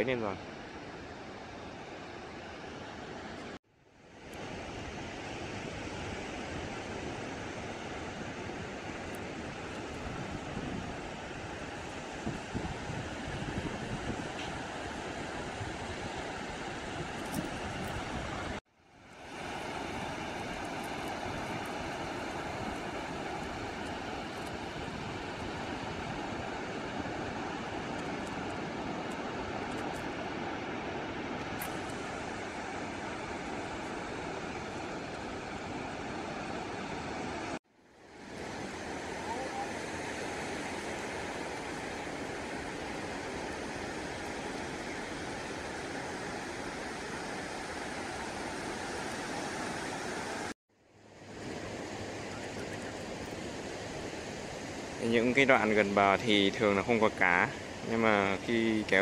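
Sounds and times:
sea surf breaking on beach: 0:00.0 - 0:50.6, 0:51.2 - 0:59.0.

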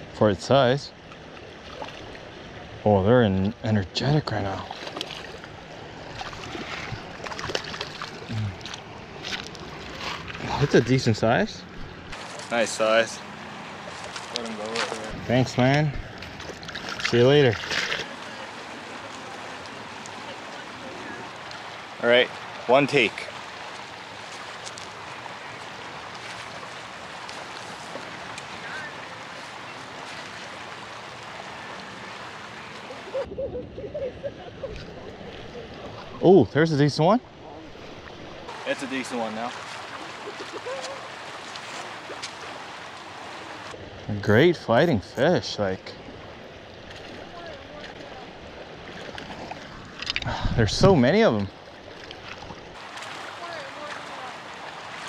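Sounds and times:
river flowing over gravel: 0:12.1 - 0:33.2, 0:38.5 - 0:44.6, 0:46.2 - 0:55.0.

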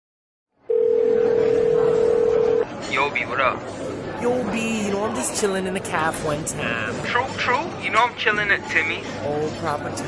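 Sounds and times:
telephone line tone: 0:00.7 - 0:02.7.

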